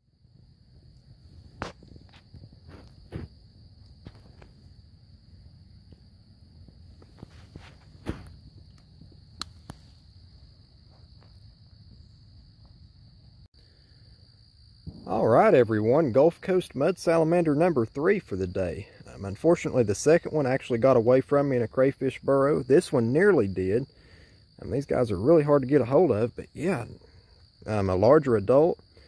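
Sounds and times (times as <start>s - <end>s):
high insect trill: 0.1s - 29.0s.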